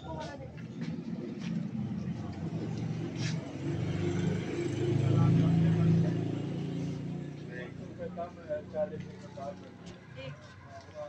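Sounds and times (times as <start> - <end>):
faint background chatter: 0.0 - 11.0
vehicle engine passing by: 0.6 - 10.4.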